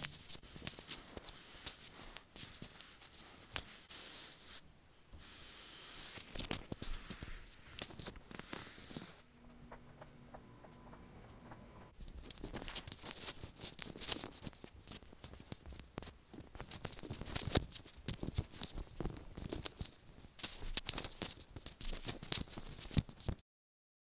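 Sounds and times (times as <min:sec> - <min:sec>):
earbud cable crackling rustle: 0:00.0 - 0:10.1, 0:12.0 - 0:23.4.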